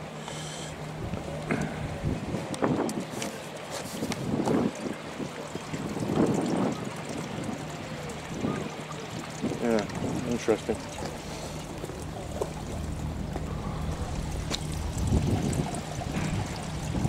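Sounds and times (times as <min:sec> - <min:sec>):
water lapping against rocks: 0:00.0 - 0:17.0
wind on microphone: 0:01.0 - 0:10.4, 0:12.2 - 0:17.0.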